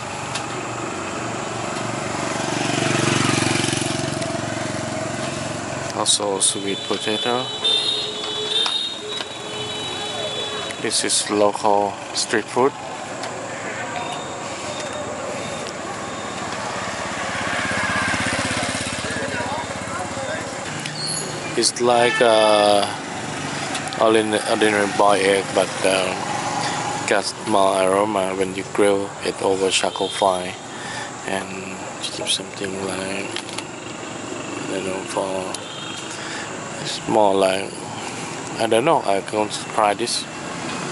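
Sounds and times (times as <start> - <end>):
traffic noise: 0.0 - 40.9
vehicle engine passing by: 0.6 - 6.2, 14.2 - 21.8, 22.9 - 27.8.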